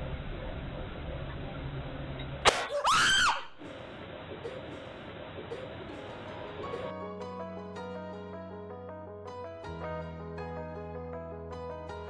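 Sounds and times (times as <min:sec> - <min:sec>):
high-pitched scream: 0:02.6 - 0:03.6.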